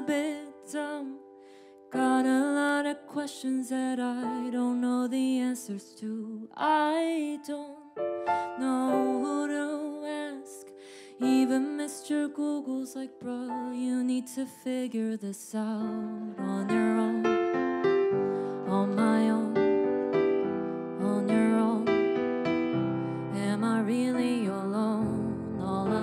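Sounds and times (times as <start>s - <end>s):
electronic keyboard piano chords: 0.0s - 14.6s, 15.7s - 26.0s
woman singing: 0.0s - 17.7s, 18.4s - 20.1s, 21.0s - 22.2s, 23.2s - 26.0s.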